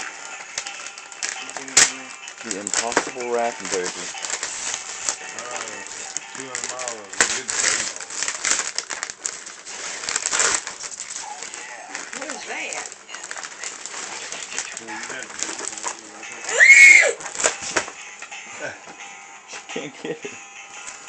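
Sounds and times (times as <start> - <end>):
wrapping paper tearing: 0.0 - 18.0.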